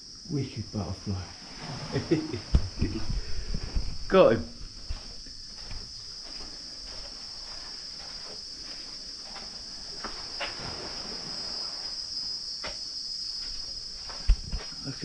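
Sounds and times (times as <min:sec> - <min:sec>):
insect chorus drone: 0:00.0 - 0:15.0.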